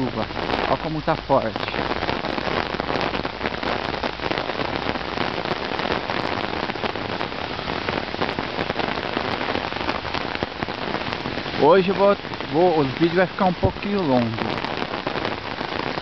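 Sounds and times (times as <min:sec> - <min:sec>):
heavy rain on pavement: 0:00.0 - 0:16.0.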